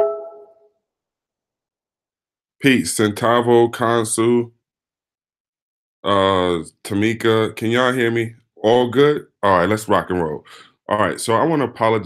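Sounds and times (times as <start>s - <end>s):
short chime ring: 0.0s - 0.5s.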